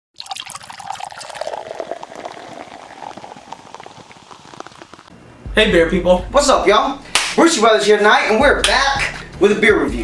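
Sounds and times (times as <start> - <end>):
beer foam fizzing: 0.2 - 5.1
beer pouring into a glass: 0.2 - 5.1.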